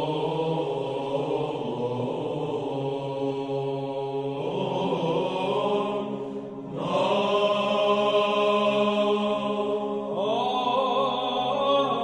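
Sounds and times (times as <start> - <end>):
choir chanting: 0.0 - 12.0.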